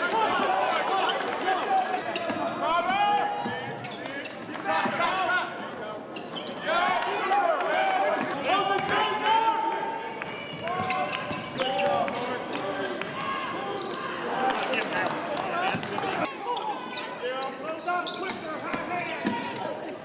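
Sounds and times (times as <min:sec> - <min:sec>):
sneakers squeaking on floor: 0:01.9 - 0:04.5, 0:06.1 - 0:06.7, 0:10.4 - 0:14.1, 0:16.5 - 0:20.0.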